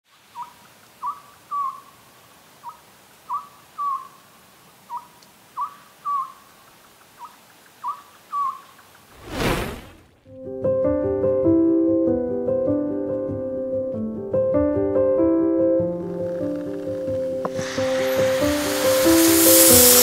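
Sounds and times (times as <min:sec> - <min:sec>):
owl hooting: 0:00.4 - 0:02.0, 0:02.6 - 0:04.2, 0:04.9 - 0:06.5, 0:07.2 - 0:08.8
loud whoosh: 0:09.1 - 0:10.2.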